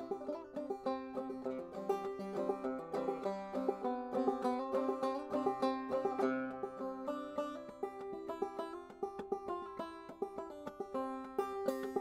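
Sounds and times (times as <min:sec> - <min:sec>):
banjo notes and strums: 0:00.0 - 0:12.0.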